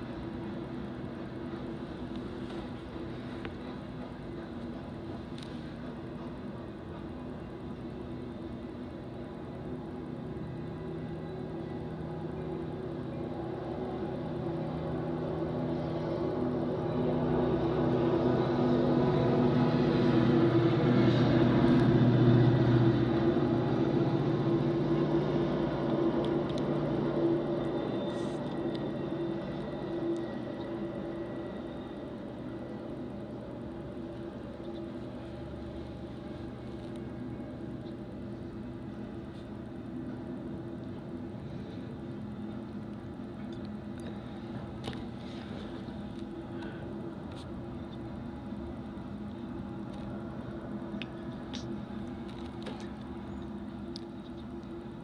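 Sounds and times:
diesel locomotive engine: 0.0s - 55.0s.

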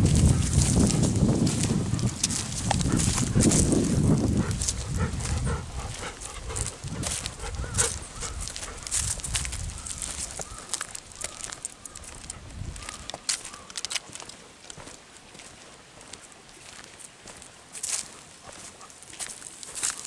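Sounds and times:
dogs breathing and snuffling: 0.0s - 14.6s, 17.8s - 20.0s
rustle of dry grass and leaves: 0.0s - 20.0s.

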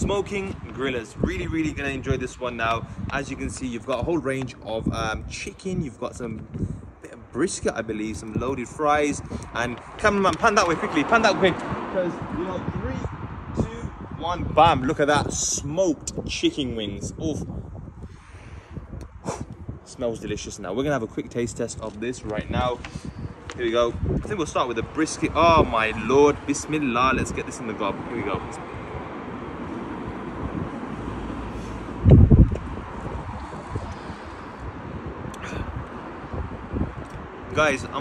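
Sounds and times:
distant traffic rumble: 0.0s - 38.0s
wind on microphone: 0.0s - 38.0s
person sniffing: 19.2s - 19.6s.

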